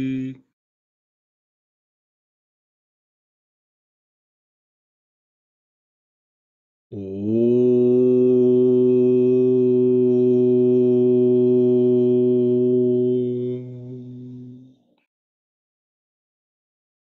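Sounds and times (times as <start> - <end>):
man chanting om: 0.0 - 0.5, 7.0 - 14.8.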